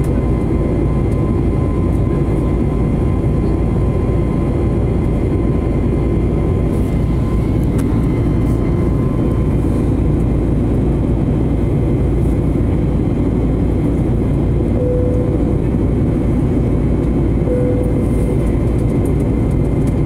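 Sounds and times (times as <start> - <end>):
jet engine and airflow rush: 0.0 - 20.0
faint steady whine: 14.4 - 19.7.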